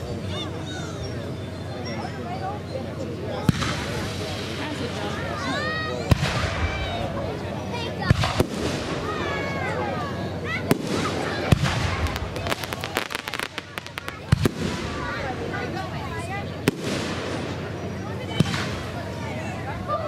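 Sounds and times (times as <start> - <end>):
rapid firework pops: 8.1 - 9.0, 10.7 - 15.2, 16.6 - 17.6, 18.4 - 18.9
firework shells bursting with bangs: 10.7 - 15.3, 16.6 - 17.8.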